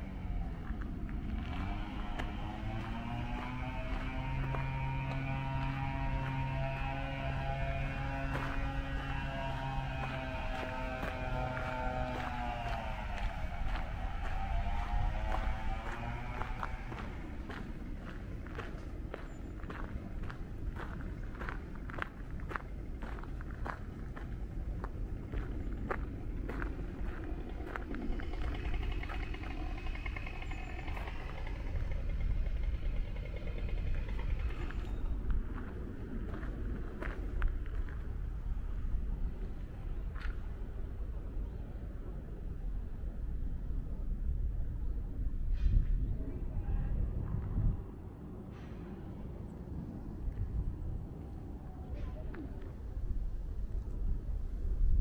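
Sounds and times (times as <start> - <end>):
droning tone: 0.0 - 55.0
footsteps crunching on gravel: 0.6 - 29.2.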